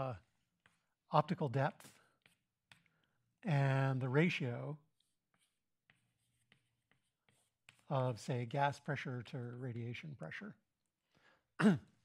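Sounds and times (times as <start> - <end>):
chalk ticking on blackboard: 0.2 - 1.0, 1.8 - 3.7, 4.4 - 9.6.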